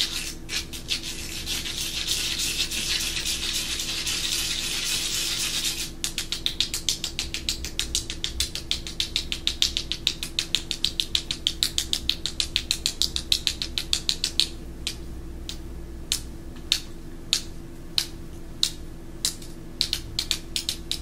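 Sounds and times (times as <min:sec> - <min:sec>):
fingers scratching rice crisp: 0:00.0 - 0:06.9.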